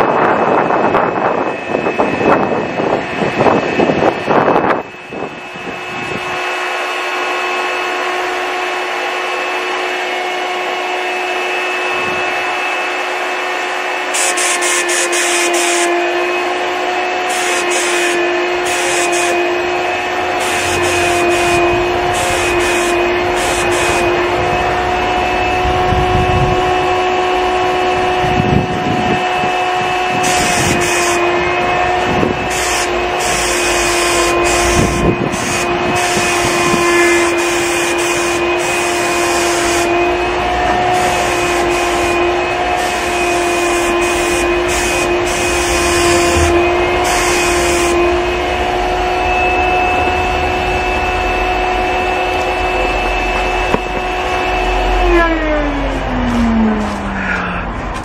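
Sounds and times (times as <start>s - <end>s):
wind rumble on microphone: 0.0s - 6.5s, 11.9s - 12.4s, 19.8s - 33.5s, 34.2s - 37.4s, 44.4s - 58.0s
turbine sprayer whining: 0.0s - 58.0s
spray gun hissing: 14.1s - 16.3s, 17.2s - 24.6s, 30.2s - 49.2s.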